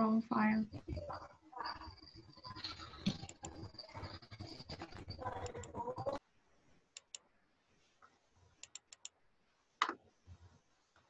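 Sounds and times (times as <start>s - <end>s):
computer clicks: 3.0s - 3.7s, 7.0s - 7.2s, 8.6s - 9.1s.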